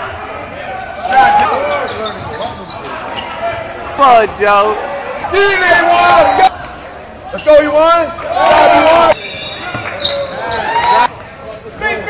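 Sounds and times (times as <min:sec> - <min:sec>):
players' voices: 0:00.0 - 0:12.0
sneakers squeaking on court: 0:00.1 - 0:04.0, 0:06.5 - 0:08.4, 0:09.2 - 0:12.0.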